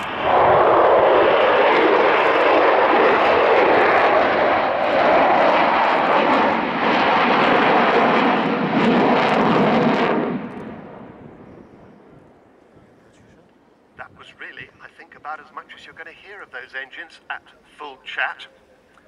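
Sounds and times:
jet engines roaring overhead: 0.0s - 19.0s.

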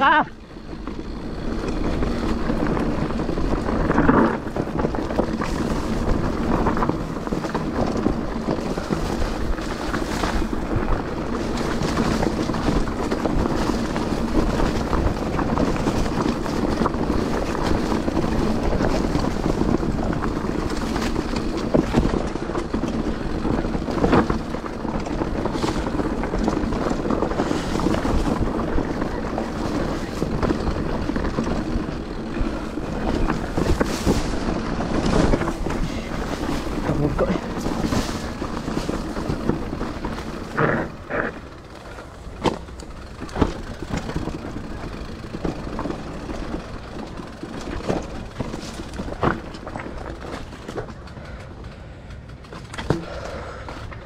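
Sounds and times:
tyre and bike rattle: 0.0s - 54.0s.

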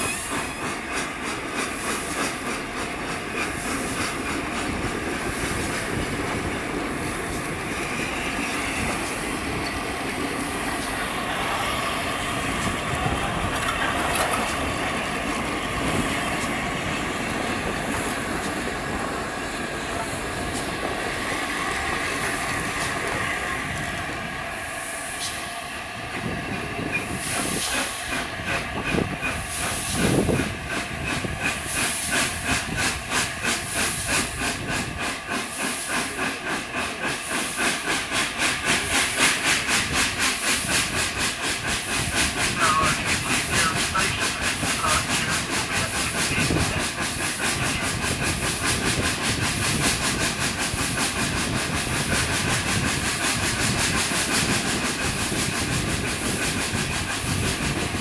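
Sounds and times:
steam hiss: 0.0s - 58.0s
steam locomotive exhaust beat: 0.0s - 58.0s.

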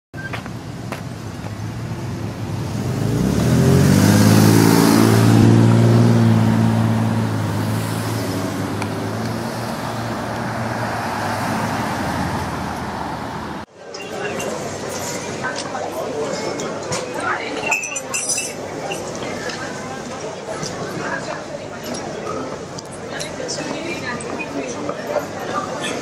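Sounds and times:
traffic hum: 0.2s - 26.0s
vehicle engine passing: 1.6s - 13.7s.

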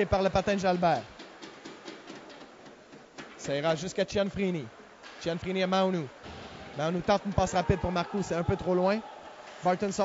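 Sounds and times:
ice rink ambience: 0.0s - 10.0s.

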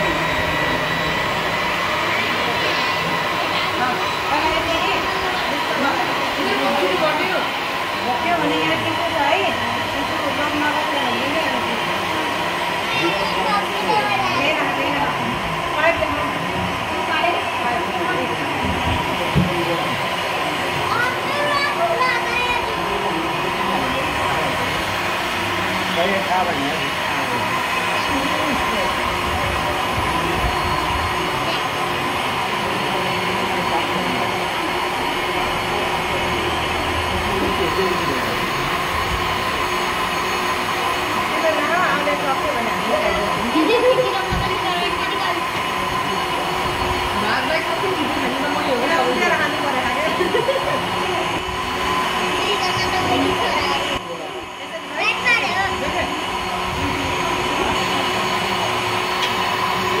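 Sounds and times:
faint indistinct voices: 0.0s - 60.0s
mechanical humming noise: 0.0s - 60.0s.

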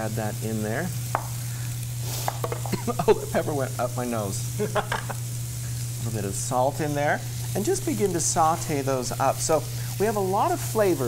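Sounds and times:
steady low hum: 0.0s - 11.0s
vegetables sizzling in pan: 0.0s - 11.0s.

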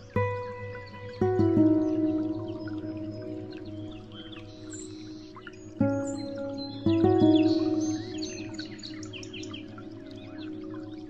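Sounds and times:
soft relaxation music: 0.0s - 11.0s
songbirds twittering: 0.0s - 11.0s.

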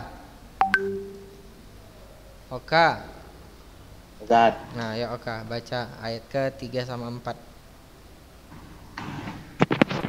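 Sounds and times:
electronic notification chime: 0.6s - 1.6s.

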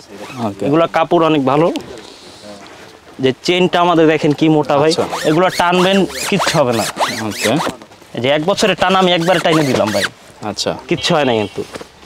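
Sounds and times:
man talking: 0.0s - 11.8s
zipper being pulled: 0.2s - 0.6s, 4.9s - 7.8s, 8.9s - 10.2s.

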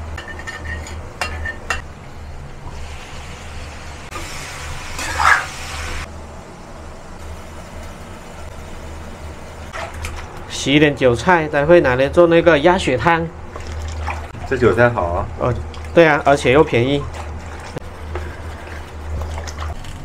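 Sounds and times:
metal spatula scraping frying pan: 0.2s - 1.8s
food frying: 2.7s - 6.1s.

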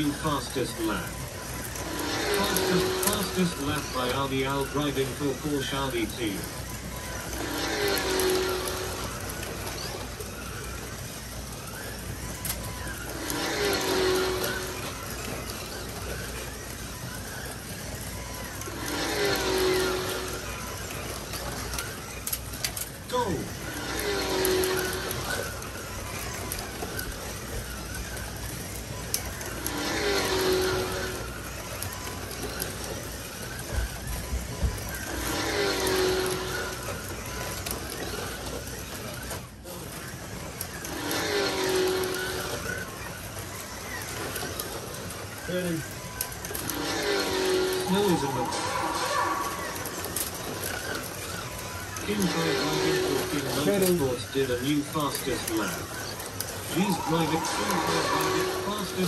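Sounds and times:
distant slot cars running: 0.0s - 59.0s
slot car motor whine passing: 0.0s - 59.0s.

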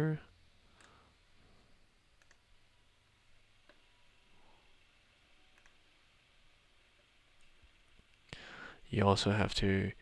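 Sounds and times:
computer mouse clicks: 0.8s - 1.0s, 2.2s - 2.5s, 3.6s - 3.9s, 5.5s - 5.8s.

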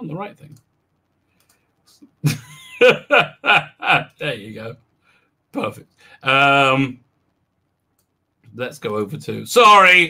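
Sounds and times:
man laughing: 2.2s - 4.5s.

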